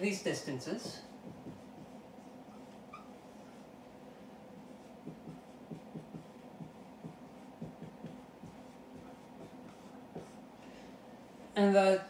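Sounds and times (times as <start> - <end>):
low room hum: 0.0 - 12.0
marker writing on whiteboard: 0.7 - 3.7, 4.6 - 10.4
marker tip squeak: 2.5 - 3.6.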